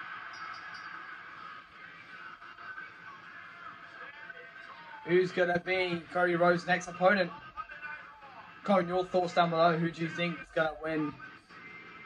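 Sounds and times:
television wrestling broadcast: 0:00.0 - 0:12.0.

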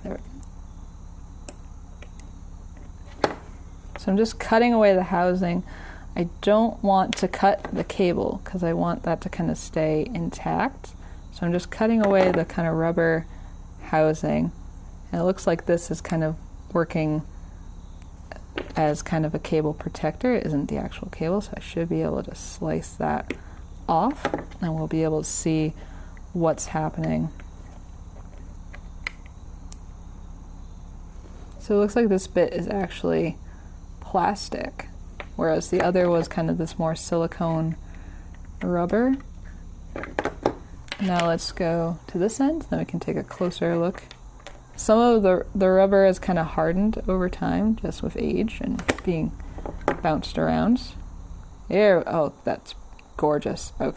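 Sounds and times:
low room noise: 0:00.0 - 0:53.9.

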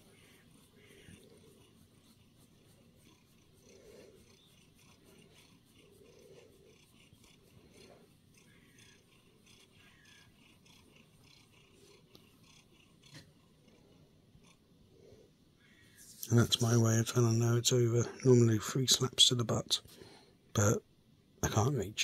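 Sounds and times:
cat purring: 0:00.0 - 0:18.3.

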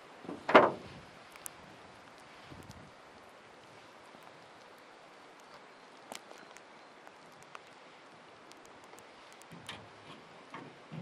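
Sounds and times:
faint small ticks: 0:01.3 - 0:09.9.

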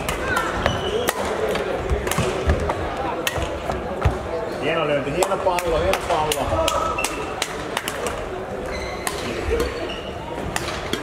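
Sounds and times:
rackets hitting shuttlecock: 0:00.0 - 0:04.2, 0:09.0 - 0:09.8, 0:10.4 - 0:11.0.

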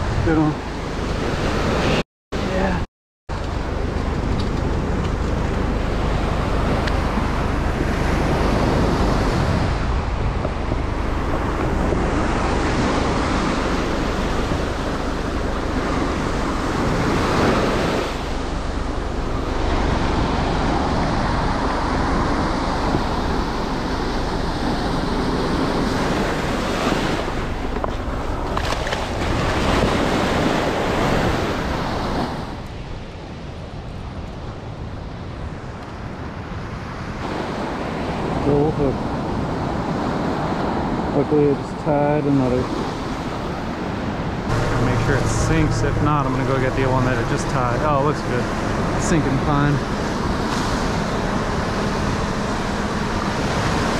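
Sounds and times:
ocean surf breaking on beach: 0:00.0 - 0:53.9
wind buffeting microphone: 0:03.3 - 0:53.9.

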